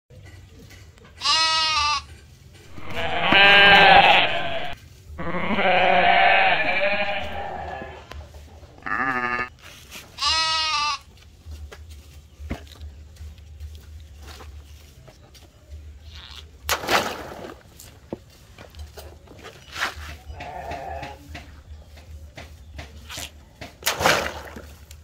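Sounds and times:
livestock bleating: 0:01.2 - 0:02.1, 0:02.7 - 0:08.1, 0:08.8 - 0:09.5, 0:10.2 - 0:11.1, 0:20.4 - 0:21.2.

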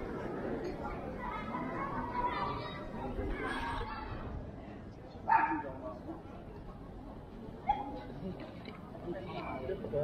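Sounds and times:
murmur of street crowd: 0:00.0 - 0:10.0
dog barking: 0:05.3 - 0:05.6.

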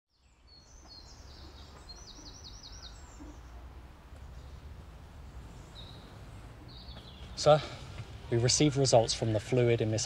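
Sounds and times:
birds chirping: 0:00.1 - 0:10.0.

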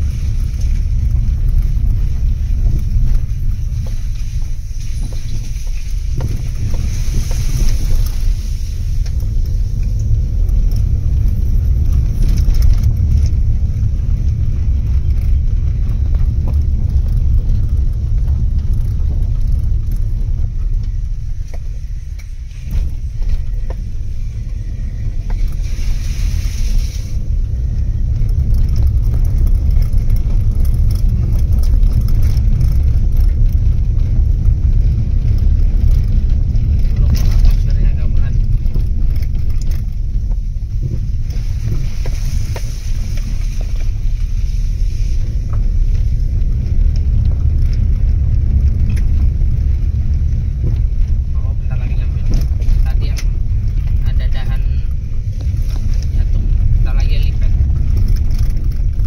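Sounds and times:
car tyres and engine rumble: 0:00.0 - 0:59.0.

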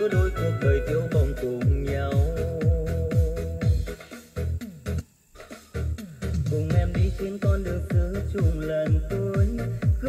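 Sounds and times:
pop song with electronic drum beat: 0:00.0 - 0:10.0.

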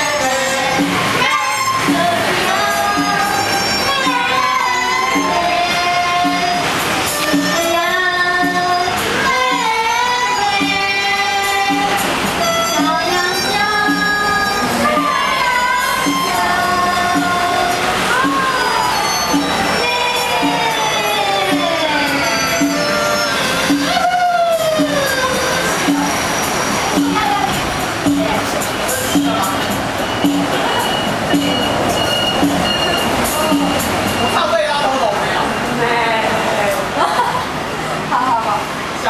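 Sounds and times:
bamboo flute held notes: 0:00.0 - 0:28.3
low plucked notes: 0:00.0 - 0:34.1
street noise: 0:00.0 - 0:39.0.

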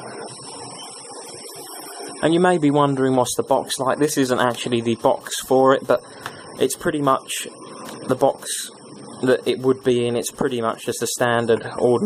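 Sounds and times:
faint high-pitched whine: 0:00.0 - 0:12.0
steady low hiss: 0:00.0 - 0:12.0.

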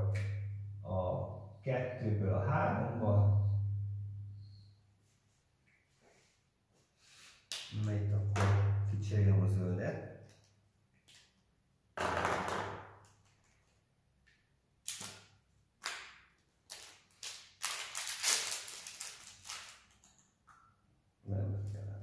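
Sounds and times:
plastic packaging crinkling: 0:15.8 - 0:20.4.

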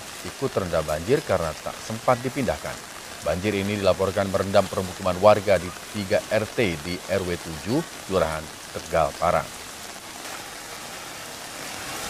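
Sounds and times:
rain falling on water: 0:00.0 - 0:12.0.

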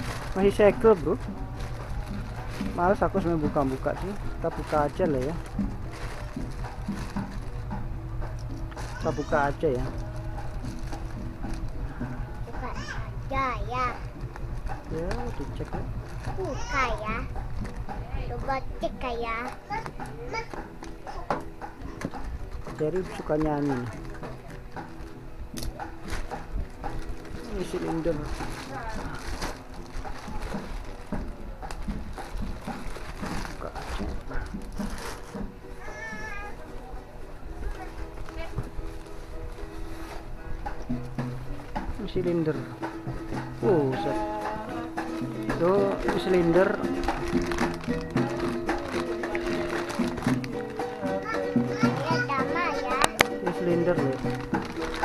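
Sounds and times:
plastic packaging crinkling: 0:00.0 - 0:11.9, 0:13.9 - 0:18.0, 0:21.9 - 0:36.1, 0:43.5 - 0:55.0.

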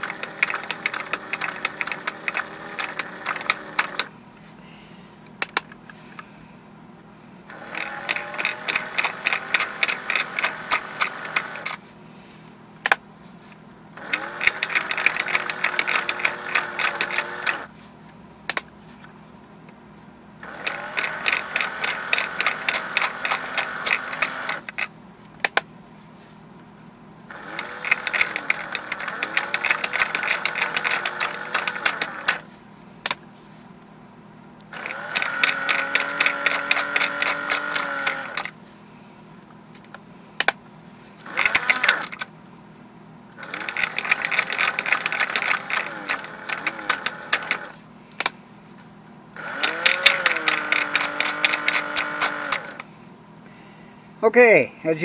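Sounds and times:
cordless drill motor whine: 0:00.0 - 0:04.1, 0:06.4 - 0:11.8, 0:13.7 - 0:17.7, 0:19.4 - 0:24.7, 0:26.6 - 0:32.4, 0:33.8 - 0:38.6, 0:41.2 - 0:47.8, 0:48.8 - 0:52.9.

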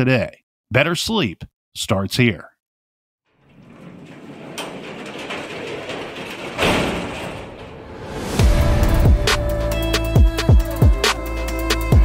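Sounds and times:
intro music: 0:08.4 - 0:12.0.

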